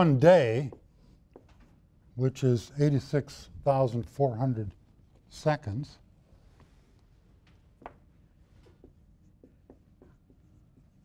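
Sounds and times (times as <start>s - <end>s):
marker squeaking on whiteboard: 8.8s - 11.0s.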